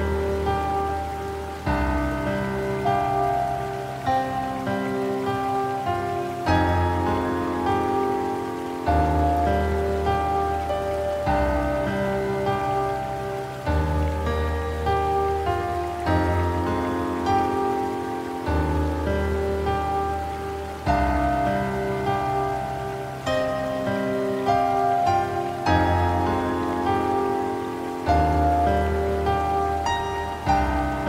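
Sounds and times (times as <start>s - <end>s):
slow solo piano music: 0.0s - 31.0s.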